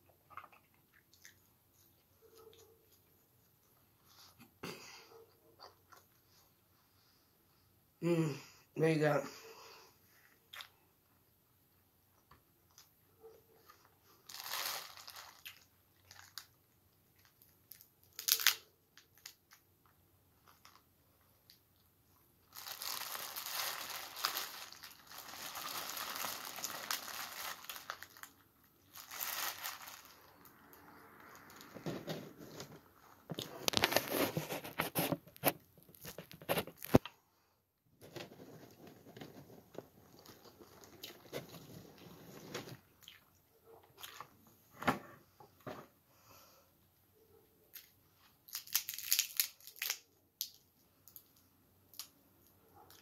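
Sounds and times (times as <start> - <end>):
plastic bag crinkling: 14.1 - 16.6, 17.2 - 19.6, 20.4 - 20.9, 22.4 - 32.7, 48.5 - 50.5.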